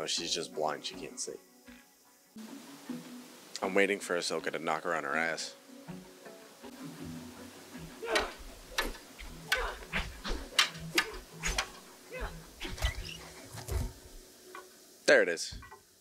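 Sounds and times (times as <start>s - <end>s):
music: 0.0s - 16.0s
short vocal efforts: 8.0s - 8.5s, 9.5s - 10.2s, 12.1s - 12.5s.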